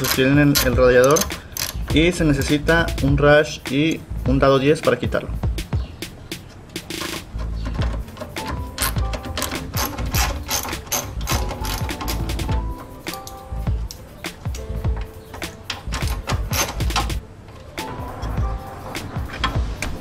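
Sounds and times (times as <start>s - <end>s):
hand ratchet clicking: 0.0s - 3.0s, 6.3s - 17.2s
background music with bass: 0.0s - 20.0s.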